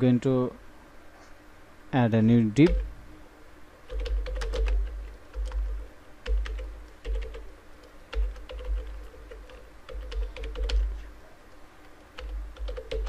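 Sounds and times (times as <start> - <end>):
typing on computer keyboard: 2.6 - 2.9, 3.8 - 11.0, 11.9 - 13.0.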